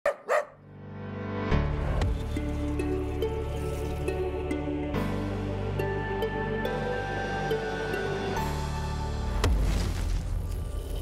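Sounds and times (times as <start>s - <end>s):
short dog barks: 0.0s - 0.6s
music: 0.3s - 11.0s.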